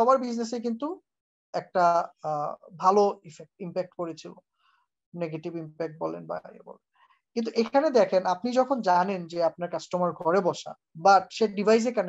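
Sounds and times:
person speaking over video call: 0.0 - 1.0, 1.6 - 4.4, 5.2 - 12.0.

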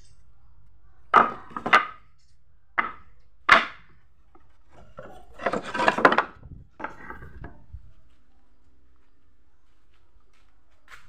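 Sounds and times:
wood scraping on wood: 1.1 - 2.0, 2.8 - 8.1
wooden boards knocking together: 1.1 - 2.0, 2.8 - 7.6.

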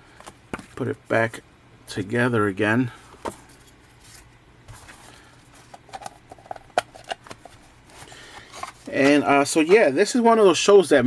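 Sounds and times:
discs rubbing and handling: 3.0 - 9.9.

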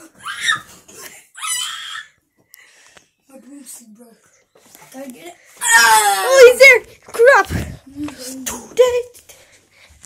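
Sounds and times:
child screaming: 0.2 - 0.7, 1.4 - 2.2, 5.6 - 6.6.

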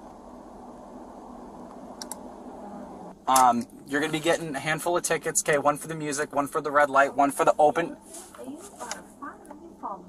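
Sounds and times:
idling vehicle cabin hum: 0.0 - 10.0.

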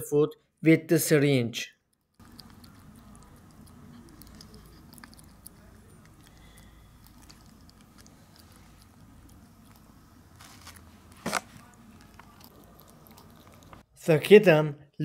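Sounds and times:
kitten licking wet food: 2.1 - 13.9.

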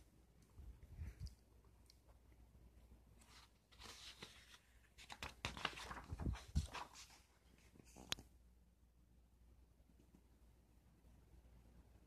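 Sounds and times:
book page turning: 3.2 - 8.2.

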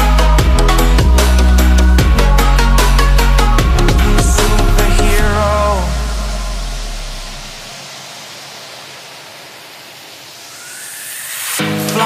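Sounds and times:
deep sub-bass note: 0.2 - 7.7
white-noise wash: 0.9 - 12.0.

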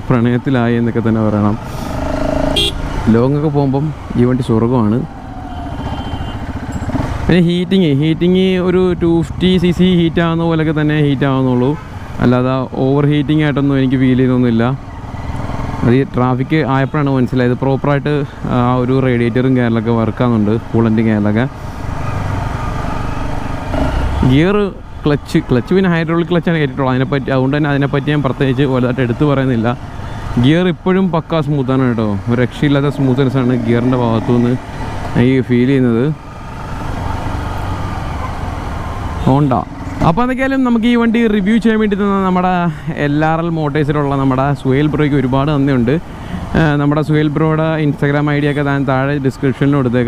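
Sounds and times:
man talking: 0.0 - 1.6, 3.0 - 5.1, 7.3 - 14.8, 15.8 - 21.5, 24.2 - 29.8, 30.4 - 36.2, 39.2 - 50.0
road and wind noise: 0.0 - 50.0
motorcycle engine running: 1.8 - 3.0, 5.2 - 7.3.

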